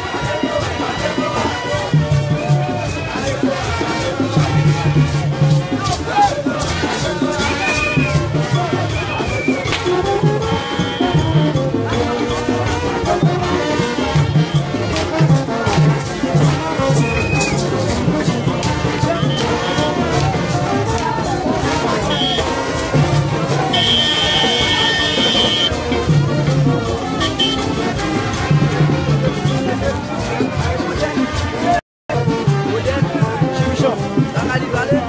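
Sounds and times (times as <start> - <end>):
brass horns playing: 0.0 - 29.8
crowd voices: 0.0 - 35.0
shakers: 0.0 - 35.0
steady percussion: 0.0 - 35.0.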